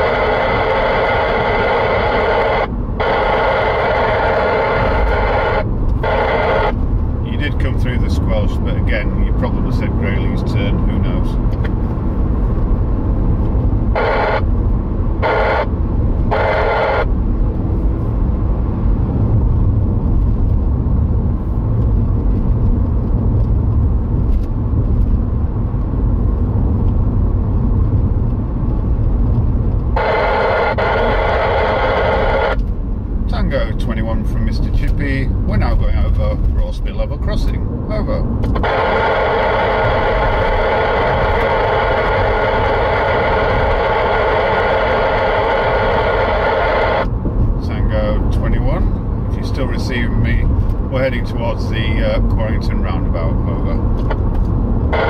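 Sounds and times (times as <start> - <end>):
cb radio buzzing hiss: 0.0 - 6.8, 14.0 - 14.5, 15.2 - 15.7, 30.0 - 32.6, 38.6 - 47.1
speech buried in radio noise: 0.0 - 11.6, 13.9 - 14.5, 15.2 - 17.1, 30.0 - 32.6, 33.3 - 54.3
car road and engine rumble: 0.0 - 55.0.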